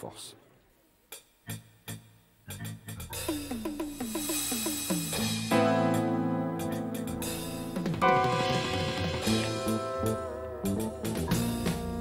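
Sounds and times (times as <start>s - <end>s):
piano and electric guitar jazz: 5.4s - 12.0s.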